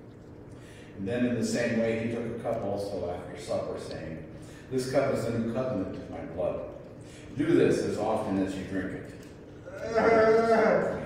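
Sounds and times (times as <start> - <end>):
man's wavering voice: 9.6 - 11.0.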